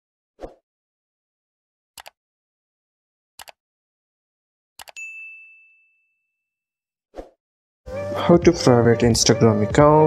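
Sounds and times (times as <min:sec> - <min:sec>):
bell notification ding: 0:05.0 - 0:06.3.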